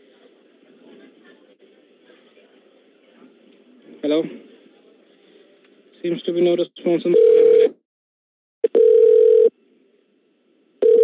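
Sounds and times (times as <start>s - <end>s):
telephone beep tone: 7.1s - 7.7s, 8.6s - 9.5s.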